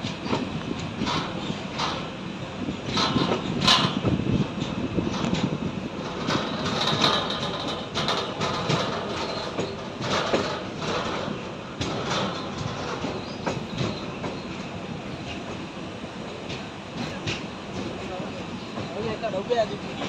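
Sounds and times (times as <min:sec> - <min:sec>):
sharp clicks and clanks: 0:00.0 - 0:02.2, 0:02.8 - 0:14.6
train wheels rumbling on rails: 0:00.0 - 0:20.0.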